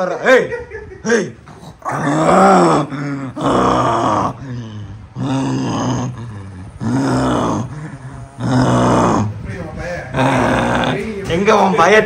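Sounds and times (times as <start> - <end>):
man groaning: 1.1 - 9.4, 10.1 - 11.0.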